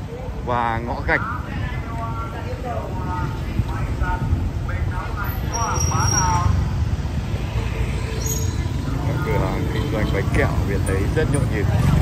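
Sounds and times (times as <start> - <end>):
people's voices in the street: 0.0 - 12.0
traffic engine rumble: 0.0 - 12.0.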